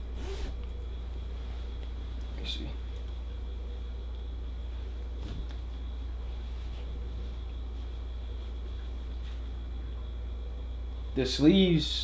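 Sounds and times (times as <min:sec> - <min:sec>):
faint high whine: 0:00.0 - 0:12.0
low room hum: 0:00.0 - 0:12.0.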